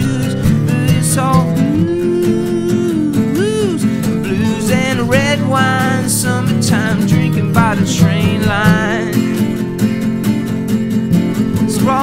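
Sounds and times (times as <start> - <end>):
person singing: 0.0 - 9.4, 11.2 - 12.0
strummed acoustic guitar: 0.0 - 12.0
swooping lead guitar note: 1.8 - 6.5, 11.1 - 12.0
country rock band playing: 3.4 - 12.0.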